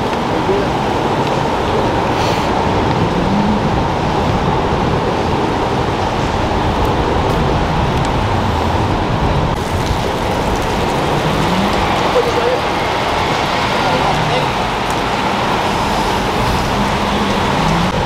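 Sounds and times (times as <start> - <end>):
road traffic noise: 0.0 - 18.0.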